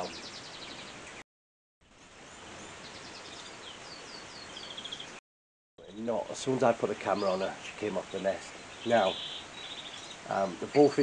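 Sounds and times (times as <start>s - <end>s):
finches chirping: 2.3s - 5.2s, 5.8s - 11.0s
steady hiss: 5.8s - 11.0s
bird trill: 7.0s - 11.0s.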